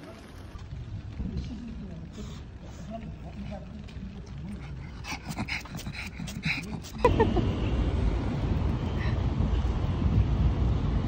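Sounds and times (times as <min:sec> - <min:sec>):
dog sniffing: 0:04.6 - 0:07.1.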